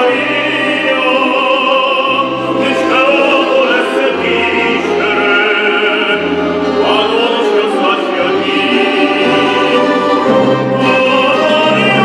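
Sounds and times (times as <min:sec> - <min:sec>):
folk string orchestra: 0:00.0 - 0:12.0
male tenor singing operatically: 0:00.0 - 0:12.0.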